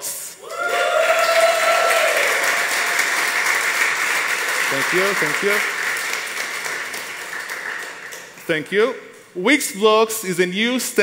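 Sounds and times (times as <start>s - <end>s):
audience applauding: 0.5s - 8.4s.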